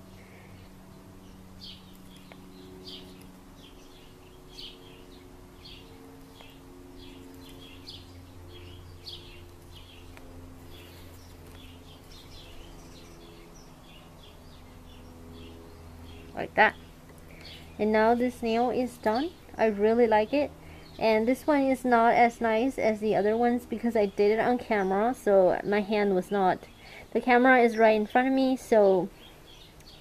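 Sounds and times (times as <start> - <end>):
small bird chirping: 0.0 - 19.3, 27.8 - 30.0
faint low hum: 0.0 - 30.0.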